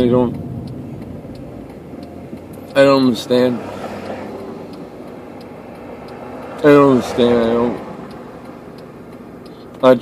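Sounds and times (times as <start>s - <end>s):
car cabin hum and hiss: 0.0s - 10.0s.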